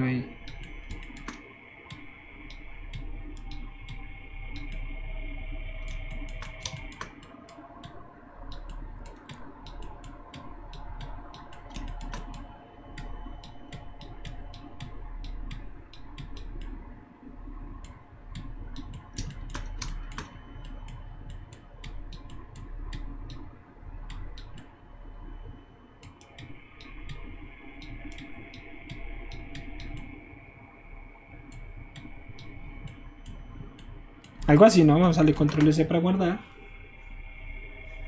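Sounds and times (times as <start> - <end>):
steady low hum: 0.0 - 38.0
mouse and keyboard clicking: 0.4 - 4.8, 5.8 - 16.7, 17.8 - 23.4.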